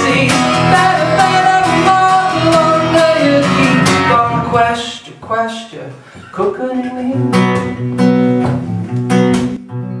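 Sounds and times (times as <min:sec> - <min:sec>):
acoustic guitar strumming chords: 0:00.0 - 0:10.0.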